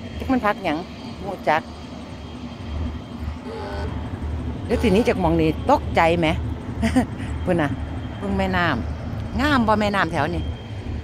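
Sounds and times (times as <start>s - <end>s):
barge engine droning: 0.0s - 11.0s.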